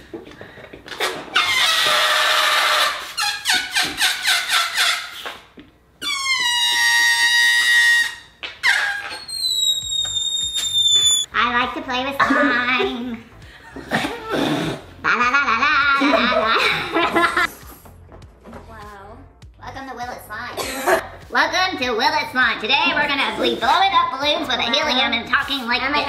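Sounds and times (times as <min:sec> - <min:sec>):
balloon neck squealing: 0:00.9 - 0:05.4, 0:06.0 - 0:11.3.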